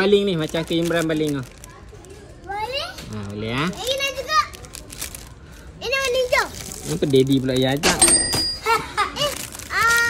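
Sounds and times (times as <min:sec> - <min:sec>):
plastic wrapper rustling: 0:00.0 - 0:07.9, 0:09.0 - 0:10.0
child exclaiming: 0:03.8 - 0:04.6, 0:09.2 - 0:10.0.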